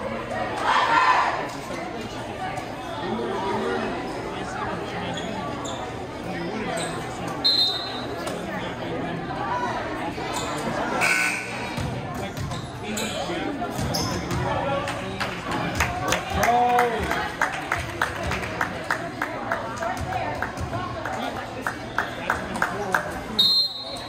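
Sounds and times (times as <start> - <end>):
indistinct spectator chatter: 0.0 - 24.0.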